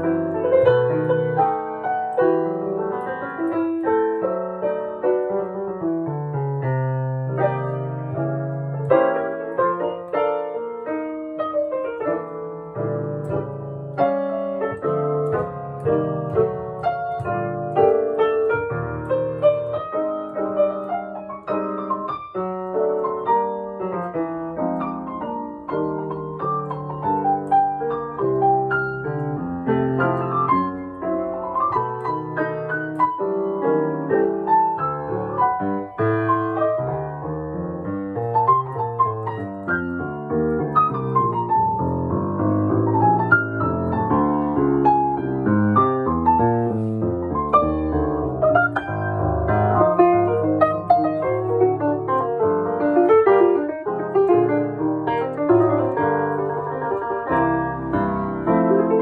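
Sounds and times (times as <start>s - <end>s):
grand piano playing: 0.0s - 59.0s.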